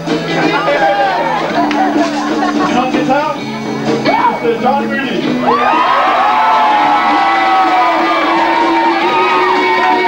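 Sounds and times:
crowd voices: 0.0 - 10.0
electric guitar long held notes: 5.3 - 10.0.

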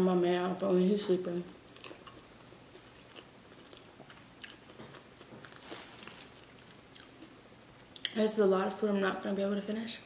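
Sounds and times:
person chewing wetly: 1.7 - 8.2.

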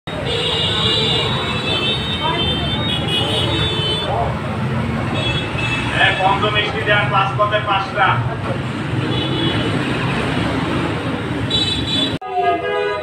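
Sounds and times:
roadside traffic: 0.0 - 13.0
high-pitched vehicle horn tone: 5.1 - 6.4, 11.5 - 13.0.

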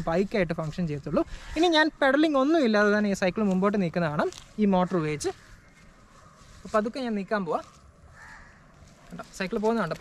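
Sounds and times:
faint bird call: 8.1 - 8.8.

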